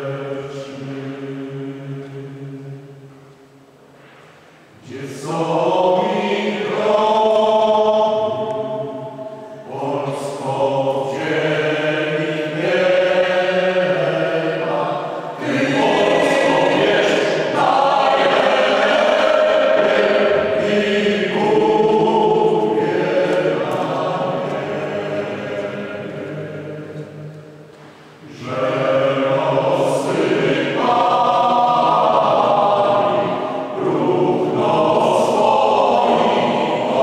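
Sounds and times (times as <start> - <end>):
mixed choir singing a cappella: 0.0 - 3.1, 4.7 - 37.0.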